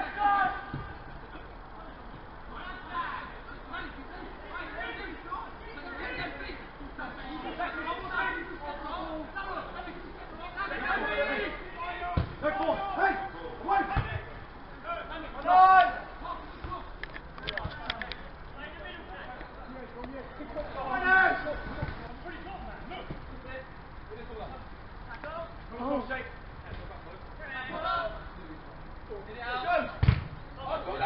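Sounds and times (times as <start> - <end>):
players and spectators chatter: 0.0 - 31.0.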